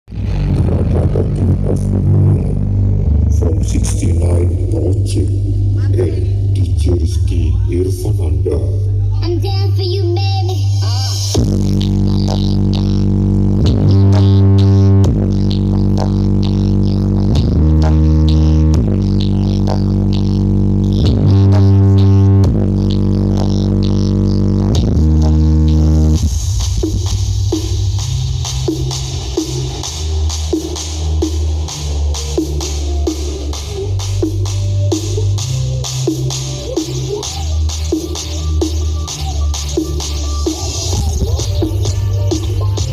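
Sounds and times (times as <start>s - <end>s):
loud bass-heavy music from subwoofers: 0.0s - 42.9s.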